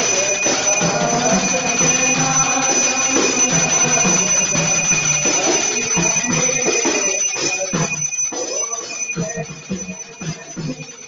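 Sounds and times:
devotional singing: 0:00.0 - 0:07.3
hand bell ringing: 0:00.0 - 0:11.0.

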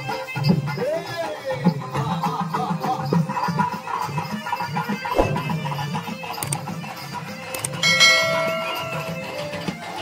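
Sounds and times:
devotional music: 0:07.6 - 0:10.0
bell-like tone ringing: 0:07.8 - 0:09.7.

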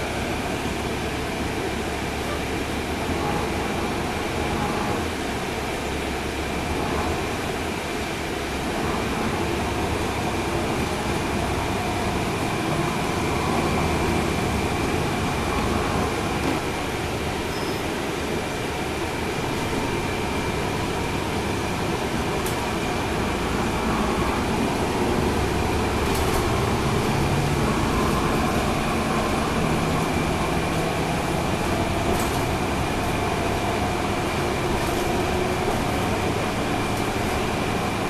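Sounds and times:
diesel bus engine running: 0:00.0 - 0:38.0
road and tyre noise: 0:00.0 - 0:38.0.

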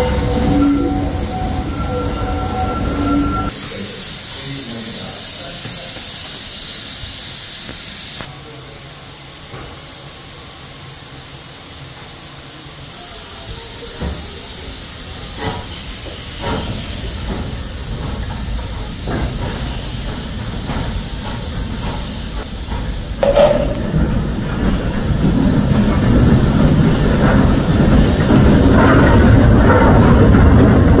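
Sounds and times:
steam locomotive hissing: 0:00.0 - 0:31.0
metallic knocks: 0:23.2 - 0:24.4.

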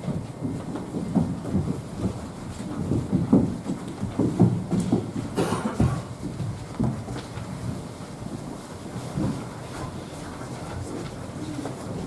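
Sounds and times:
low rumbling room noise: 0:00.0 - 0:12.0
people bumping and shuffling: 0:00.0 - 0:12.0.

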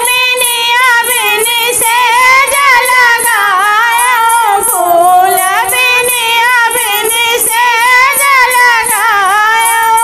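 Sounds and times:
women singing folk song: 0:00.0 - 0:10.0.

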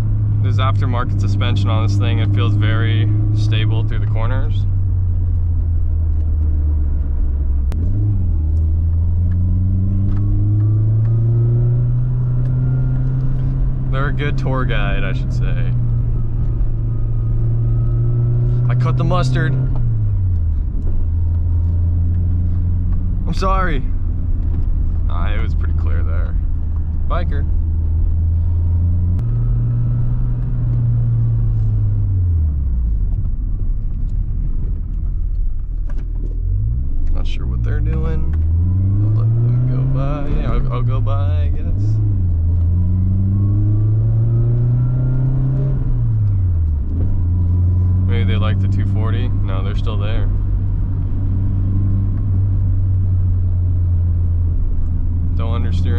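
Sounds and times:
car engine from inside cabin: 0:00.0 - 0:55.9
gear shift click: 0:05.1 - 0:13.8.

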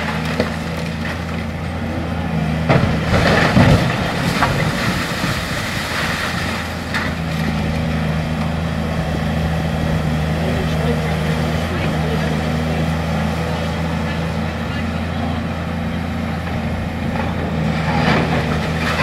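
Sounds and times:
concrete rubble crunching and falling: 0:00.0 - 0:08.6, 0:17.1 - 0:19.0
diesel excavator engine humming: 0:00.0 - 0:19.0.

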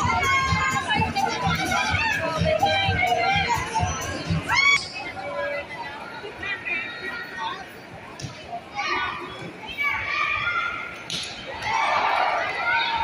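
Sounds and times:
crowd talking and shouting: 0:00.0 - 0:13.0.

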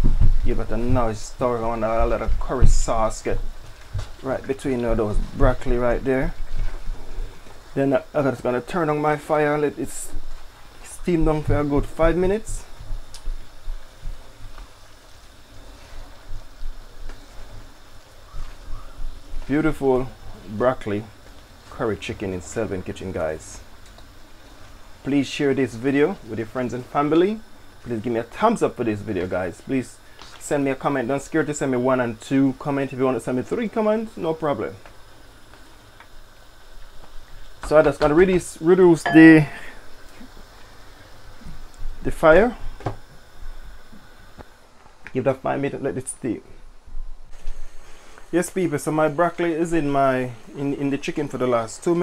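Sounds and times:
curry simmering hiss: 0:00.0 - 0:52.0.

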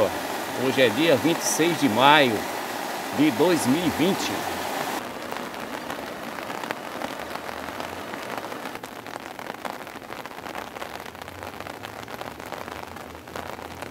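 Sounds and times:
rain falling on ground: 0:00.0 - 0:13.9.

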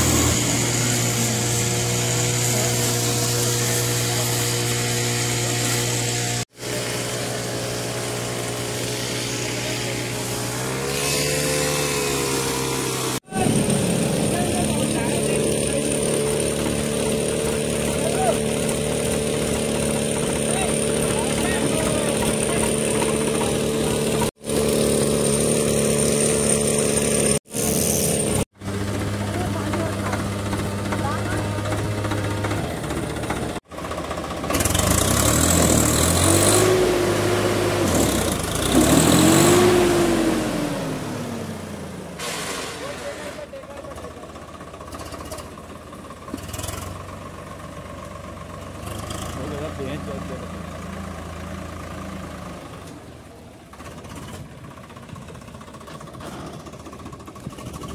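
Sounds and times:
tractor diesel engine revving: 0:00.0 - 0:57.9
indistinct voices: 0:13.2 - 0:16.4.

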